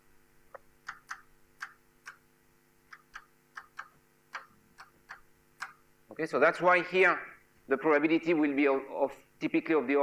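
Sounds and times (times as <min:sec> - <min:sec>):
chalk ticking on blackboard: 0:00.5 - 0:02.3, 0:02.9 - 0:05.8.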